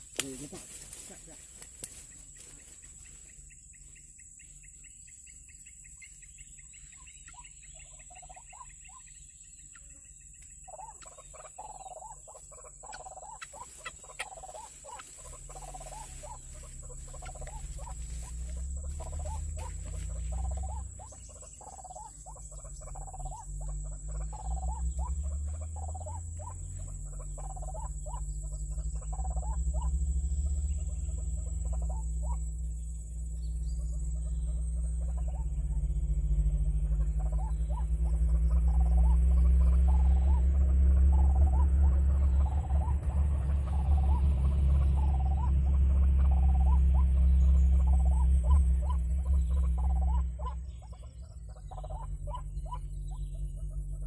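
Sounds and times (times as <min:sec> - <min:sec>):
low rumble: 0:00.0 - 0:54.0
steady high whine: 0:09.9 - 0:54.0
waterhen calling: 0:10.7 - 0:32.5, 0:36.7 - 0:54.0.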